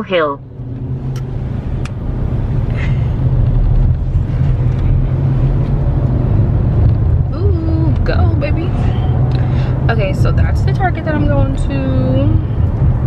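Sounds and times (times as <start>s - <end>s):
car engine and road rumble: 0.0s - 13.0s.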